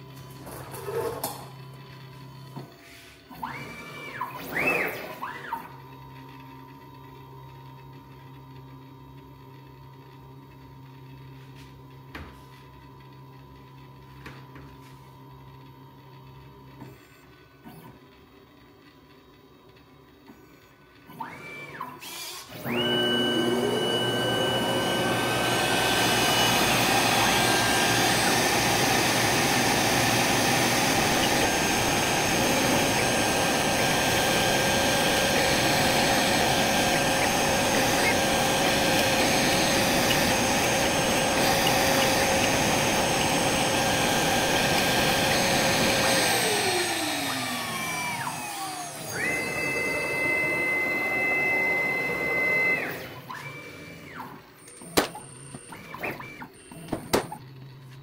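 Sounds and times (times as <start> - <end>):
router spindle whine: 0.8 - 12.0, 19.4 - 58.0
dust extraction suction noise: 22.6 - 52.9.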